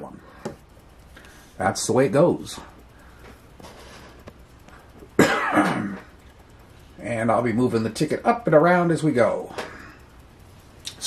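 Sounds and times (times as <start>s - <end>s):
faint room noise: 0.0s - 11.0s
person clearing throat: 5.2s - 6.1s.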